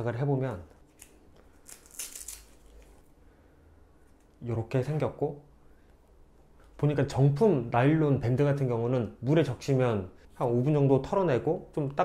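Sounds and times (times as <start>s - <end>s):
watch band rustling: 0.8s - 3.1s.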